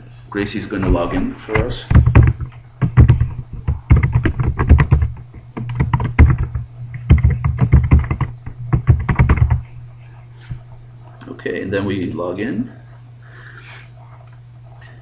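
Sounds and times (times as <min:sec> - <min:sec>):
low hum: 0:00.0 - 0:15.0
computer keyboard typing: 0:01.6 - 0:09.6.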